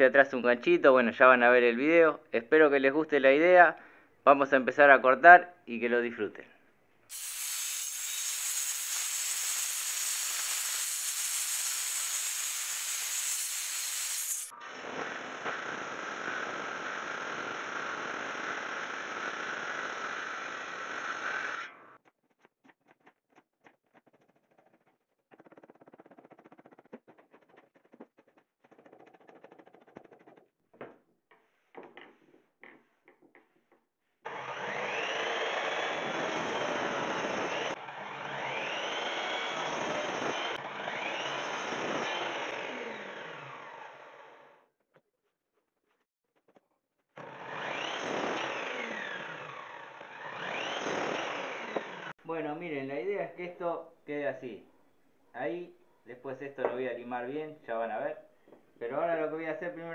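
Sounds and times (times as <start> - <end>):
miter saw cutting: 7.1 - 22.0, 34.2 - 44.6, 47.2 - 52.2
table saw ripping wood: 7.1 - 22.0, 34.2 - 44.6, 47.2 - 52.2
blade scraping bark off wood: 47.2 - 52.1.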